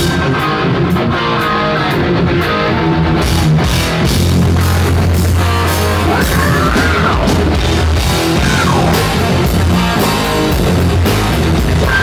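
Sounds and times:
bass guitar: 0:00.0 - 0:12.0
drums: 0:00.0 - 0:12.0
electric guitar run: 0:00.0 - 0:12.0.

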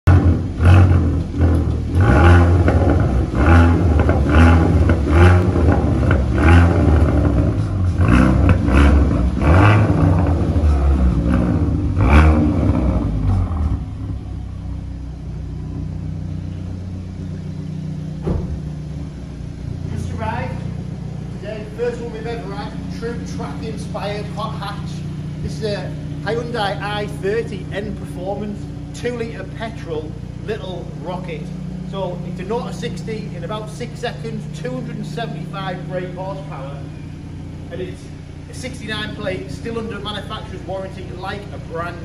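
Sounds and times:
car engine idling: 0:00.0 - 0:42.0
car engine revving: 0:00.0 - 0:42.0
exhaust cracks: 0:00.0 - 0:42.0.

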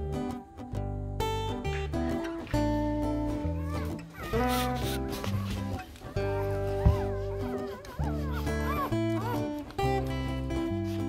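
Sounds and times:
strummed acoustic guitar: 0:00.0 - 0:11.0
puppies squeaking: 0:03.2 - 0:11.0.

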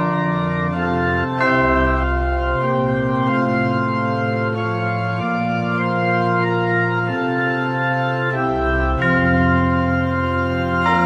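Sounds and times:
slow organ music: 0:00.0 - 0:11.0.

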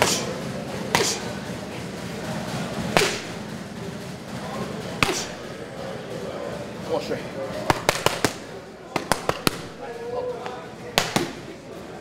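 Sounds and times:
boxing gloves hitting pads: 0:00.9 - 0:01.3, 0:02.9 - 0:03.4, 0:05.0 - 0:05.5, 0:07.6 - 0:09.8, 0:10.9 - 0:11.6.

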